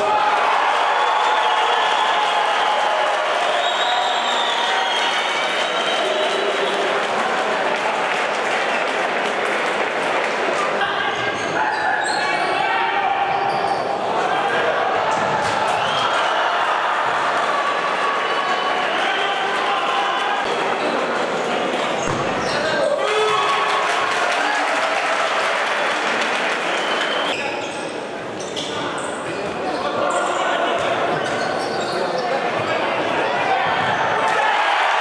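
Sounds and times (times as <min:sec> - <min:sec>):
spectators shouting in a hall: 0:00.0 - 0:35.0.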